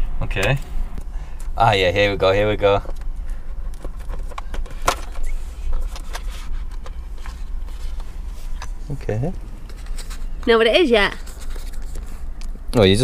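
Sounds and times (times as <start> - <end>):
steady low hum: 0.0 - 13.0
gift box packaging clicks and scrapes: 3.5 - 8.7, 11.1 - 12.2.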